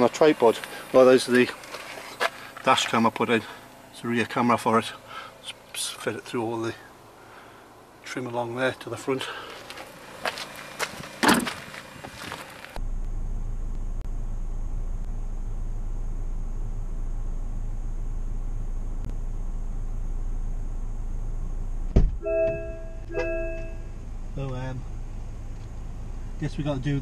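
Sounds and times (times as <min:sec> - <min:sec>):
short electronic chimes: 0:22.2 - 0:23.9.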